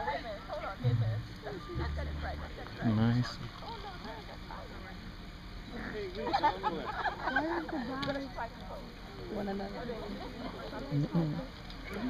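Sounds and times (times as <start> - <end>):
people talking and chattering: 0.0 - 12.0.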